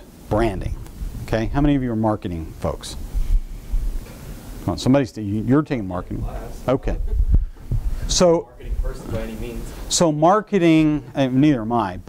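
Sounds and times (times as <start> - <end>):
microphone rubbing on clothing: 2.6 - 4.7, 6.1 - 9.9.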